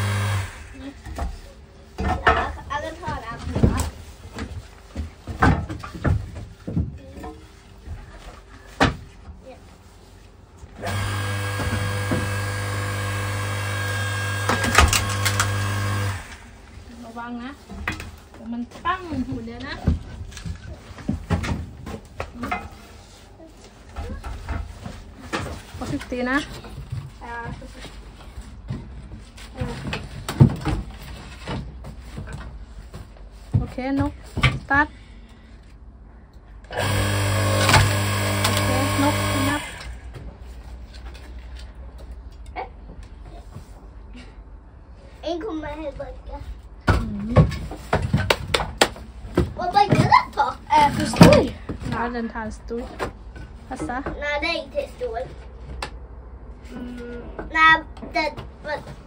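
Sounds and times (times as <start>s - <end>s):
log splitter motor humming: 0.0s - 1.0s, 10.8s - 16.5s, 36.7s - 40.0s.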